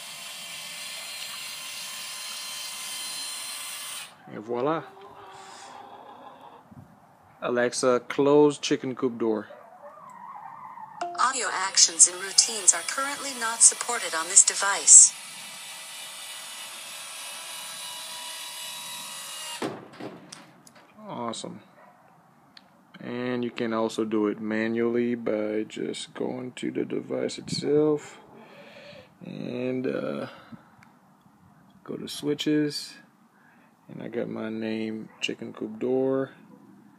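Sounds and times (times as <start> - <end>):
door actuator motor whirring: 12.2 - 20.4.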